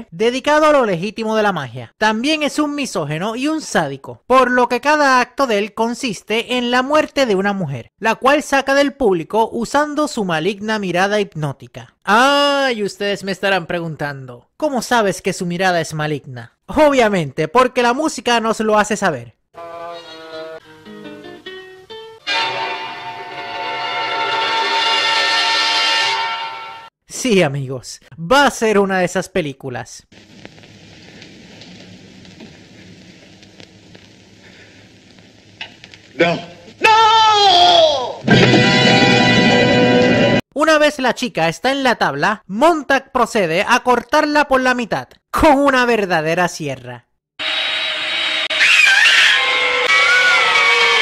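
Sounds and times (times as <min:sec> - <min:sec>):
sinister horror music chord: 0:22.2 - 0:26.9, 0:38.2 - 0:40.4.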